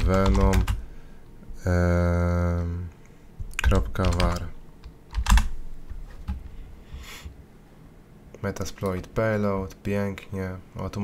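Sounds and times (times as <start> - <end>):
computer keyboard keystrokes: 0.0 - 0.8, 3.5 - 5.6.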